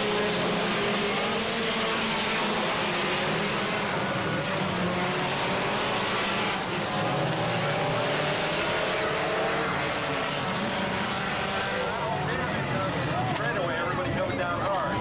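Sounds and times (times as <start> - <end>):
race car engines: 0.0 - 15.0.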